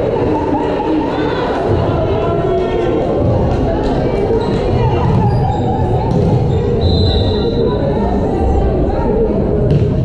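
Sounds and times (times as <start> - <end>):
crowd voices echoing: 0.0 - 10.0.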